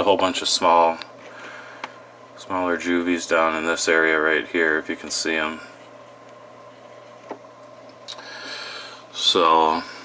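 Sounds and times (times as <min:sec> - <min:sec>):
equipment hum and hiss: 0:00.0 - 0:10.0.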